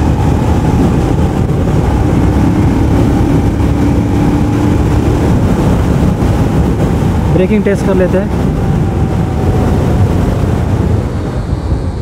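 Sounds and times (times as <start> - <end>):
motorcycle engine: 0.0 - 7.3
wind buffeting microphone: 0.0 - 12.0.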